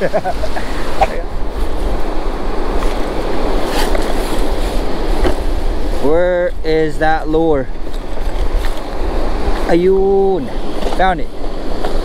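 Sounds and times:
ocean surf washing up beach: 0.0s - 12.0s
wind rumbling on microphone: 0.0s - 12.0s.

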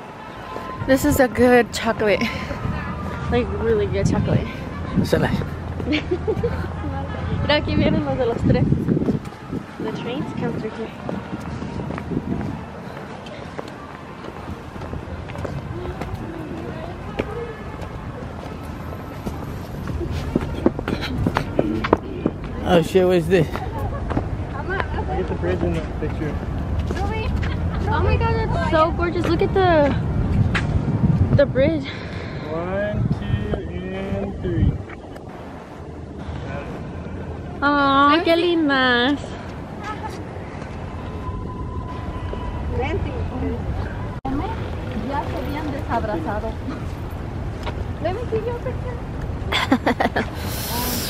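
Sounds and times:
wind buffeting microphone: 0.0s - 18.6s, 19.8s - 22.6s, 23.5s - 38.2s
outdoor background noise: 0.0s - 51.0s
footsteps on pavement: 7.6s - 28.0s, 29.1s - 31.4s, 44.6s - 49.4s.

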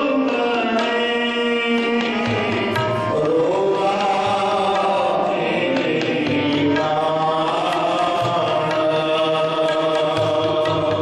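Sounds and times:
harmonium: 0.0s - 11.0s
men singing a hymn: 0.0s - 11.0s.

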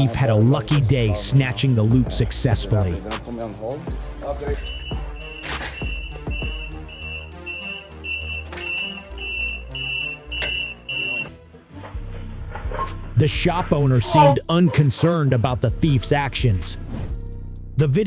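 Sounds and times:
background music: 0.0s - 18.0s
door alarm beeping: 4.5s - 11.3s.

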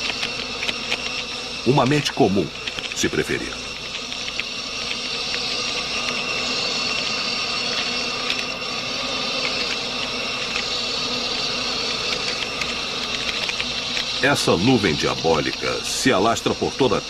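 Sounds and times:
faint high steady tones: 0.0s - 17.0s
swarm of locusts buzzing: 0.0s - 17.0s.

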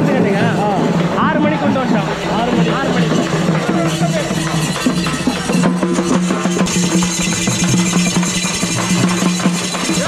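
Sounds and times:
people talking: 0.0s - 7.0s.

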